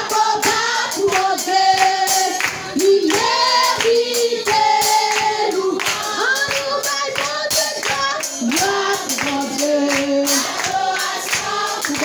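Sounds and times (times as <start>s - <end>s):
congregation singing: 0.0s - 12.0s
hand clapping on the beat: 0.1s - 12.0s.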